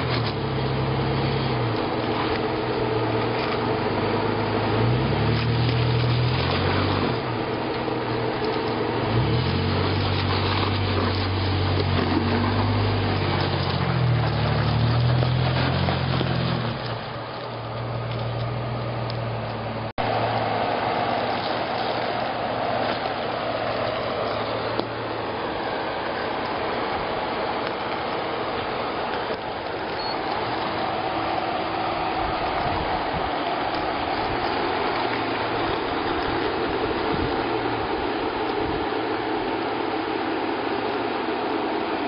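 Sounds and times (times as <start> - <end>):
car engine crawling over rock: 0.0 - 42.0.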